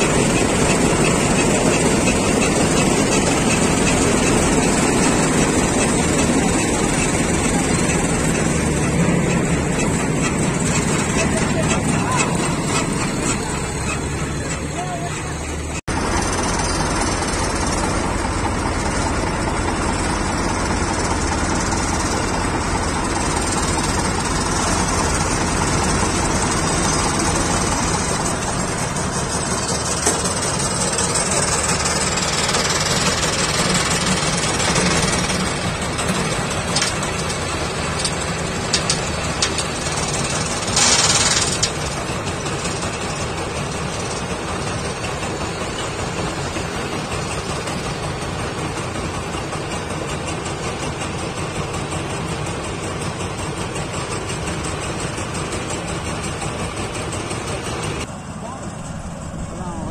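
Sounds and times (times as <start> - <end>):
combine harvester machinery: 0.0 - 59.9
tractor engine running: 0.0 - 59.9.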